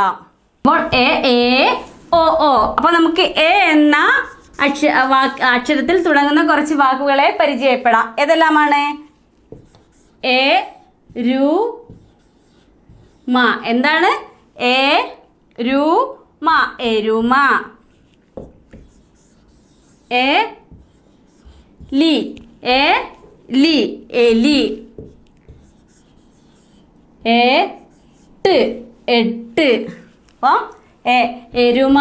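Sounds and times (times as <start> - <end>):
marker writing on whiteboard: 0.8 - 6.8, 8.4 - 15.3, 17.2 - 29.2.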